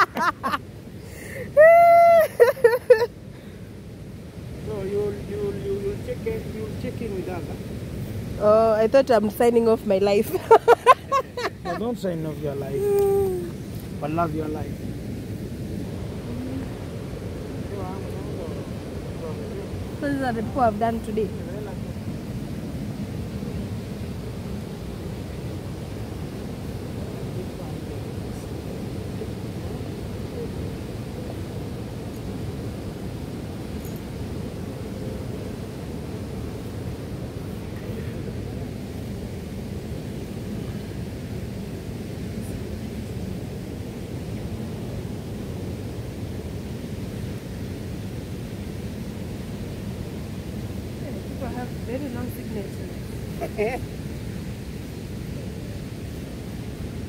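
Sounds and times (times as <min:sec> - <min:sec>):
low rushing outdoor noise: 0:00.0 - 0:57.0.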